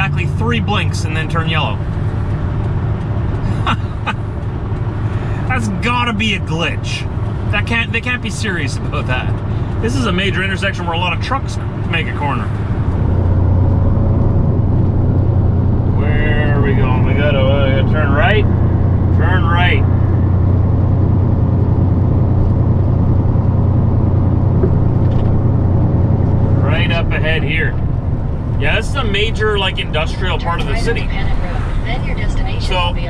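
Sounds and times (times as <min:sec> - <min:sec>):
diesel engine drone: 0:00.0 - 0:33.0.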